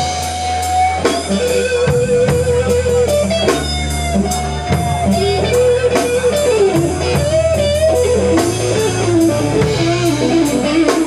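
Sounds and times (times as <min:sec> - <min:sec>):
electric guitar bending lead notes: 0:00.0 - 0:11.0
live blues band playing: 0:00.0 - 0:11.0.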